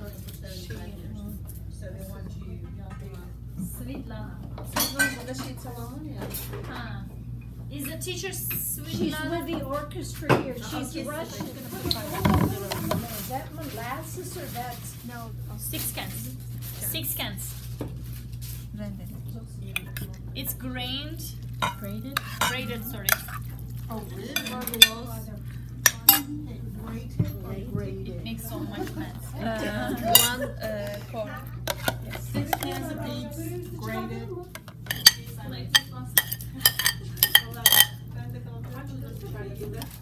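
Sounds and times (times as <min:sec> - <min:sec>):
steady low hum: 0:12.5 - 0:40.0
metal utensil clinking on ceramic: 0:21.6 - 0:23.5, 0:24.4 - 0:25.0, 0:25.8 - 0:26.3, 0:30.1 - 0:30.4, 0:34.6 - 0:38.0.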